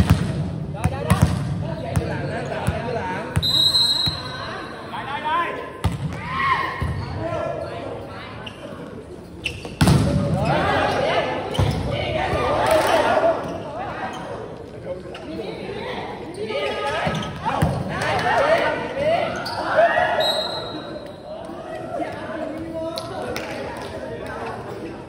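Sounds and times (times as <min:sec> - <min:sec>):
volleyballs struck and bouncing: 0:00.0 - 0:02.8, 0:09.6 - 0:10.5
whistle blast: 0:03.4 - 0:04.4, 0:20.2 - 0:20.9
players shouting: 0:10.2 - 0:14.2, 0:16.4 - 0:22.6.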